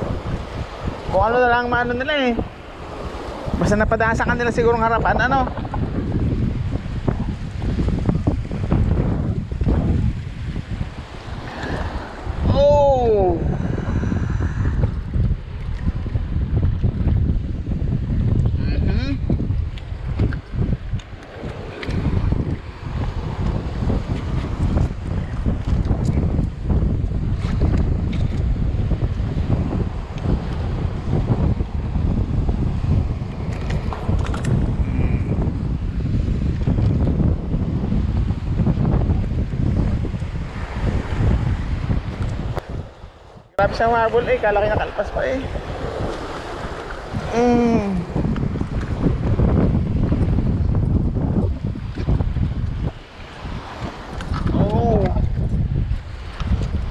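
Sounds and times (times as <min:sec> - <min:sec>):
waves washing on rocks: 0:00.0 - 0:16.8, 0:37.9 - 0:47.4, 0:48.0 - 0:56.9
wind buffeting microphone: 0:00.0 - 0:56.9.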